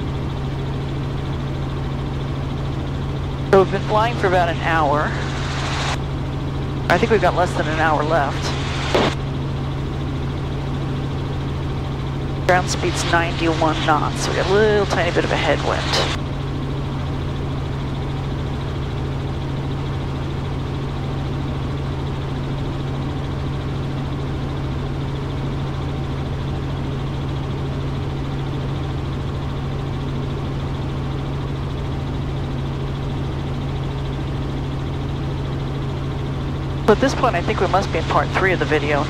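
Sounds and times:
helicopter engine and rotors drone: 0.0 - 39.0.

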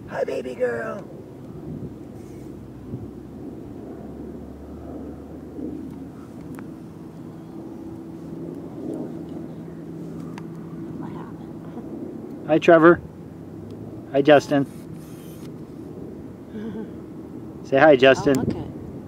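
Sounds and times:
distant traffic rumble: 0.0 - 19.0
steady engine drone: 0.0 - 19.0.

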